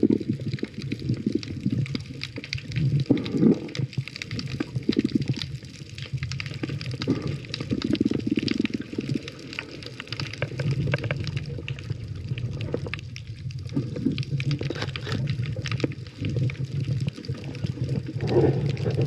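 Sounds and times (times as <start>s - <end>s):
muffled underwater rumble: 0.0s - 19.0s
small underwater clicks and crackles: 0.0s - 19.0s
water bubbling: 0.0s - 19.0s.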